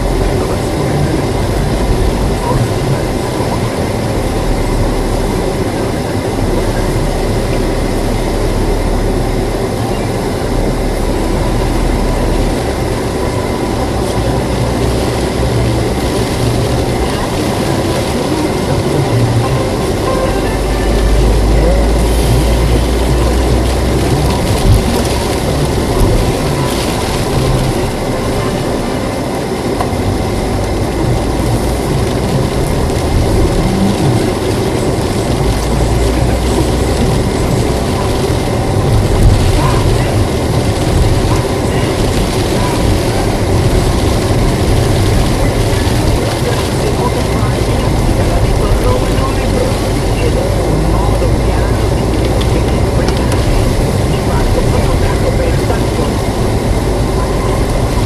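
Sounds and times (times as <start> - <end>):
car engine and road noise: 0.0 - 58.0
tyres hissing on wet road: 0.0 - 58.0.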